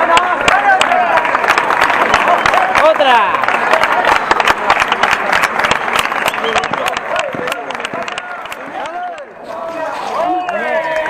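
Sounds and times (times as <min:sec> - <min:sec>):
spectators clapping: 0:00.0 - 0:11.0.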